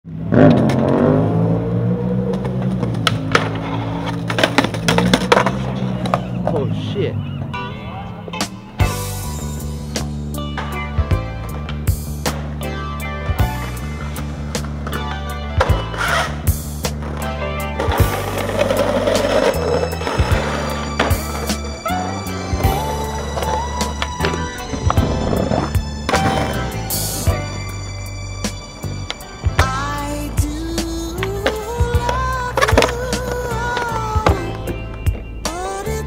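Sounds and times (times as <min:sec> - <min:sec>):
skateboard wheels rumbling on concrete: 0:00.1 - 0:12.7, 0:13.3 - 0:36.0
skateboard clacks: 0:02.3 - 0:06.6, 0:30.8 - 0:35.3
music track: 0:03.4 - 0:36.0.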